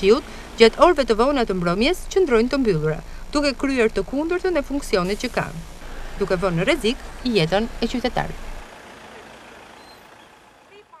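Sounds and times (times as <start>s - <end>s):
low traffic noise: 0.0s - 11.0s.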